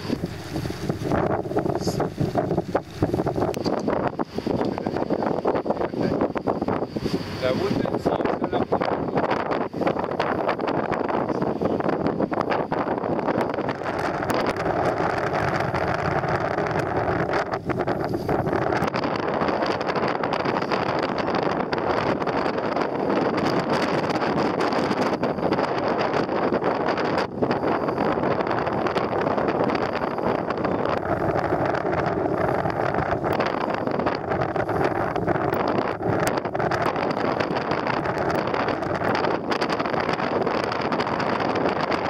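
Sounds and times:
boat engine running: 0.0s - 42.0s
wind buffeting microphone: 0.0s - 42.0s.

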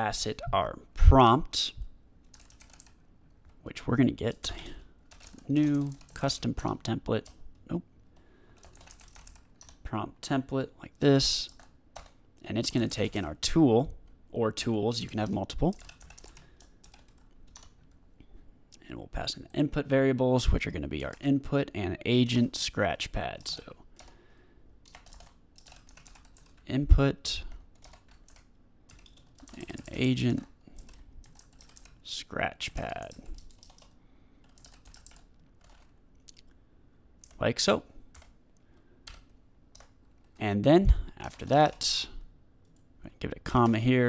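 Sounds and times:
faint computer keyboard typing: 2.2s - 3.6s, 4.4s - 6.5s, 7.1s - 9.8s, 11.3s - 13.2s, 15.0s - 18.0s, 23.2s - 24.2s, 24.8s - 26.7s, 27.3s - 32.0s, 32.8s - 36.6s, 37.2s - 37.5s, 38.1s - 40.4s, 42.6s - 42.9s.

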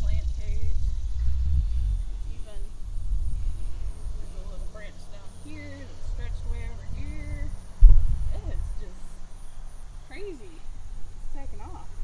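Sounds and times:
low uneven rumbling: 0.0s - 12.0s.

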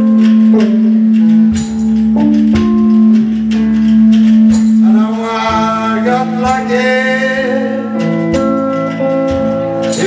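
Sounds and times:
electric guitar playing blues: 0.0s - 10.0s
drum hits: 1.2s - 10.0s.

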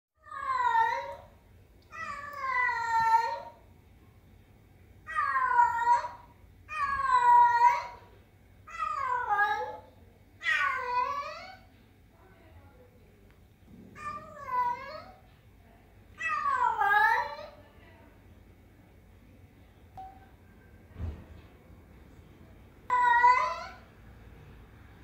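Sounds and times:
cat meowing: 1.9s - 3.6s, 5.1s - 8.0s, 10.4s - 11.6s, 14.0s - 15.2s, 16.2s - 17.6s, 22.9s - 23.8s.

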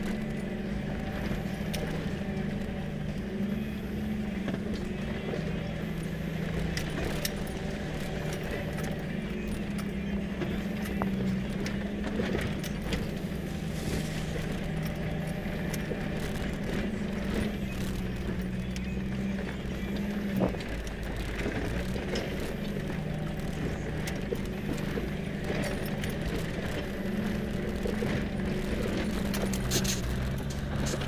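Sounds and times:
engine drone: 0.0s - 31.0s.

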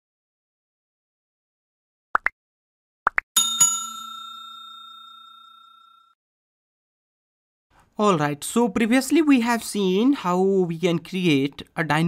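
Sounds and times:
notification bell ringing: 3.4s - 6.2s.

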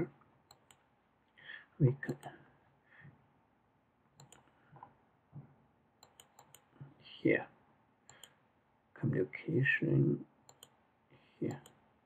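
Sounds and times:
computer mouse clicks: 0.5s - 0.8s, 2.1s - 2.3s, 4.2s - 4.6s, 6.0s - 6.7s, 8.1s - 8.4s, 10.5s - 10.8s, 11.5s - 11.8s.

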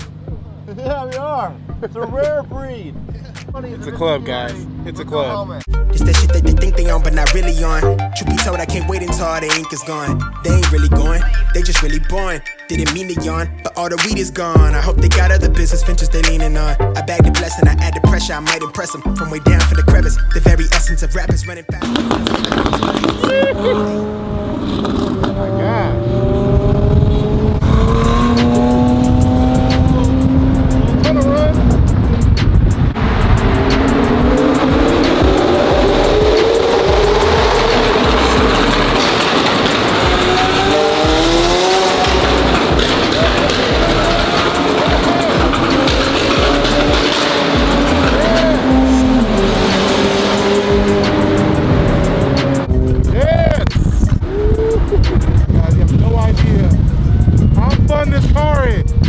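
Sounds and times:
car engine accelerating hard: 0.0s - 9.4s, 19.4s - 58.0s
rap music: 0.0s - 24.0s, 27.6s - 59.0s.

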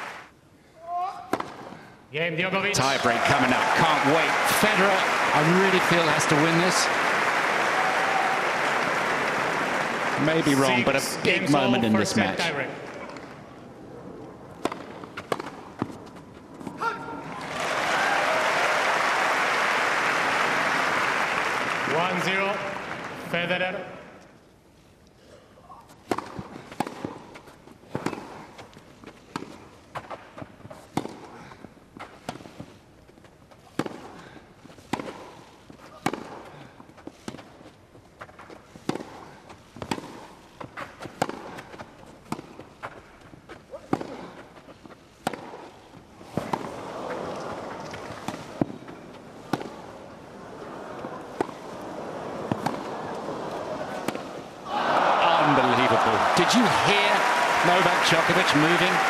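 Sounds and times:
crowd noise: 0.0s - 0.3s, 2.3s - 15.0s, 16.6s - 24.2s, 46.2s - 59.0s
tennis ball struck by racquets: 14.6s - 16.1s, 26.0s - 28.5s, 30.9s - 31.3s, 33.7s - 34.2s, 34.8s - 36.5s, 38.2s - 43.0s, 43.7s - 44.4s, 45.1s - 49.9s, 51.0s - 53.2s, 53.9s - 54.4s.

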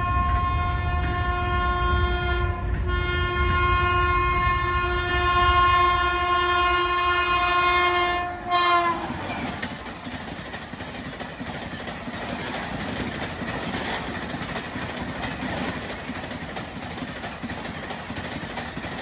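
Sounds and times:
locomotive horn blast: 0.0s - 9.3s
train coaches rushing past: 8.3s - 19.0s.

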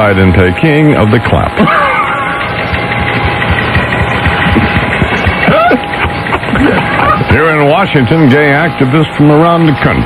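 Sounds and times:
people laughing over radio: 1.6s - 2.4s, 5.3s - 7.4s.

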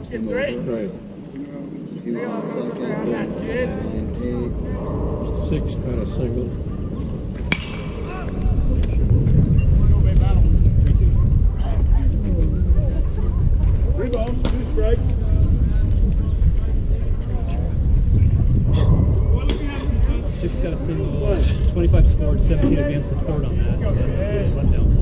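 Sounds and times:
people talking: 0.0s - 25.0s
steady low rumble: 3.2s - 25.0s.

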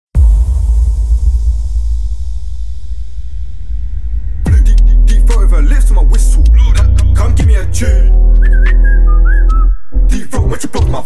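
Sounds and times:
deep bass: 0.1s - 11.0s
whistled melody: 7.8s - 10.1s.

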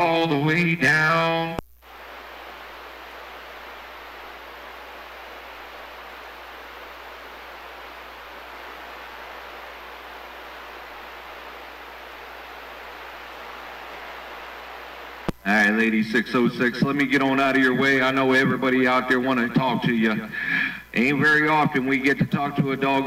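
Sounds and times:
low steady hum: 0.0s - 23.0s
radio static hiss: 0.0s - 23.0s.

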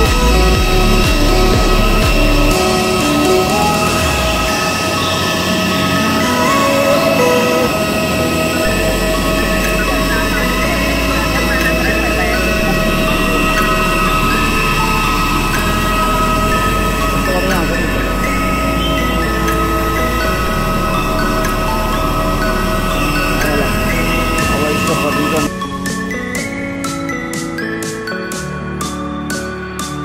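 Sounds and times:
people's voices: 0.0s - 25.5s
jet airliner whine and rumble: 0.0s - 25.6s.

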